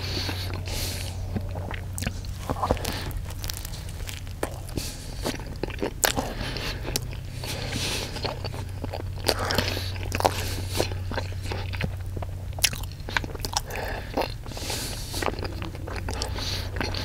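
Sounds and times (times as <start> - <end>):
person crunching and chewing food: 0.0 - 17.0
steady low hum: 0.0 - 17.0
wet mouth sounds: 0.0 - 17.0.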